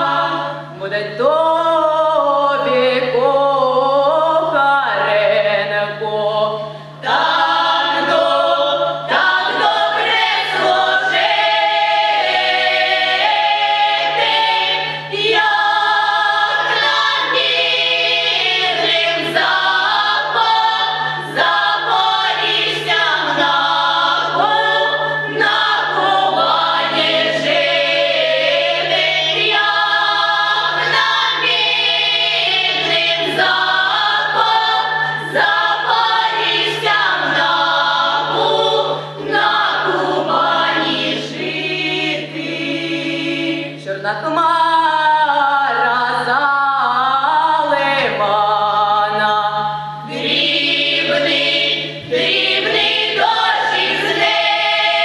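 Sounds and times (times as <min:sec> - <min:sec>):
choir singing a cappella: 0:00.0 - 0:55.0.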